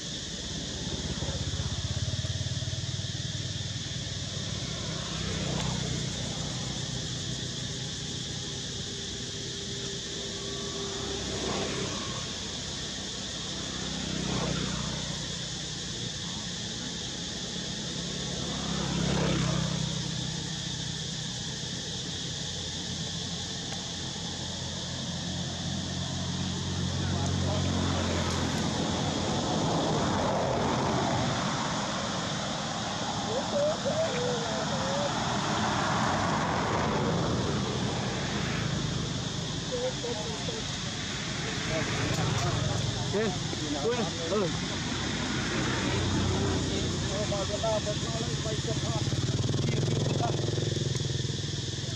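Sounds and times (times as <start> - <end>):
vehicle engine hum: 0.0 - 51.9.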